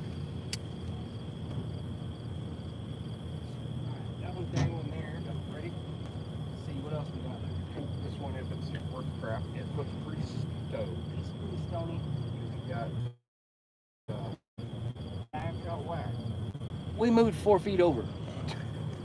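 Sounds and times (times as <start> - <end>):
insects trilling: 0.0 - 13.2, 14.1 - 19.0
steady low rumble: 0.0 - 13.2, 14.1 - 19.0
quiet indistinct voices: 3.8 - 5.8, 6.6 - 13.2.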